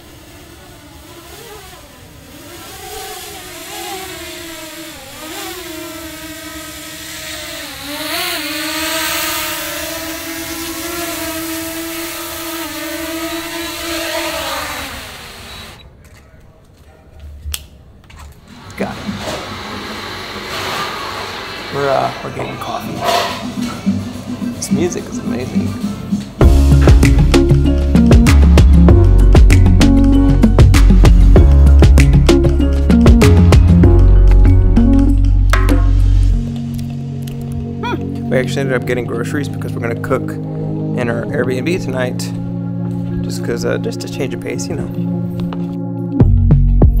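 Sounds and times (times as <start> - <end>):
drone propellers whining: 0.0 - 15.9.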